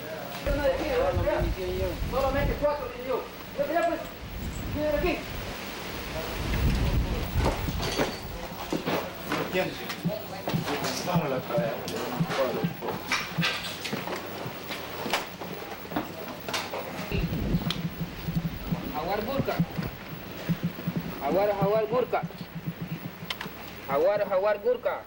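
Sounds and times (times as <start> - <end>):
muffled men's voices: 0.0 - 5.4, 6.0 - 25.0
low rumble: 17.1 - 23.4.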